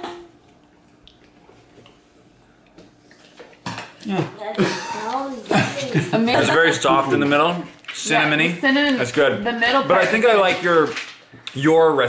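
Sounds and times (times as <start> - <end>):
man chewing: 0.4 - 4.2
man speaking: 6.2 - 12.0.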